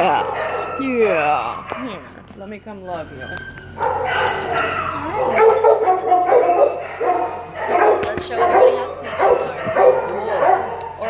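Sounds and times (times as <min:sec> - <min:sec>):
dog whining and yowling: 0:00.0 - 0:02.1, 0:02.9 - 0:07.7.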